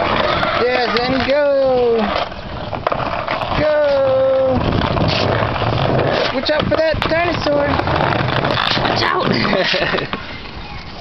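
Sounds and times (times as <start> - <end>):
skateboard wheels rolling on concrete: 0.0 - 11.0.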